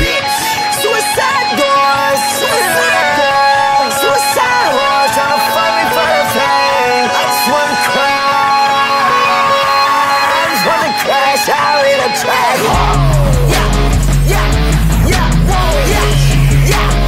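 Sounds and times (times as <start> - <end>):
electric guitar lead melody: 0.0 - 17.0
backing beat with hi-hats: 10.3 - 17.0.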